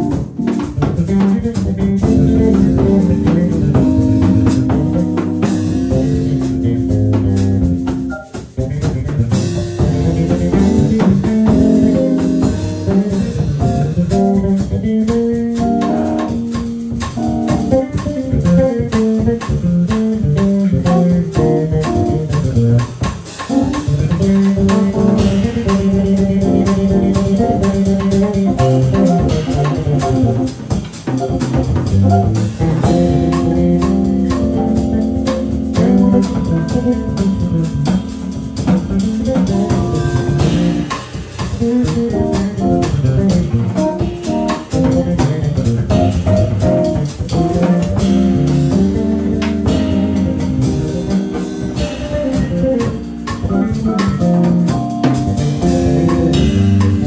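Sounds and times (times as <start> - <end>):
bass guitar: 0.0 - 57.0
digital piano: 0.0 - 57.0
drum kit: 0.0 - 57.0.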